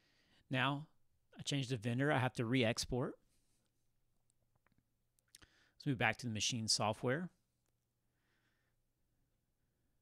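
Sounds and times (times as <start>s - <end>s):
breath: 0.0s - 0.5s, 5.4s - 5.8s, 8.1s - 8.8s
man talking: 0.5s - 3.2s, 5.8s - 7.4s.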